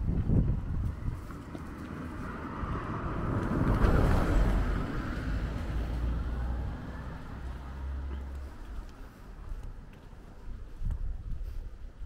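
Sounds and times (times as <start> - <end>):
van driving past: 0.6 - 9.2.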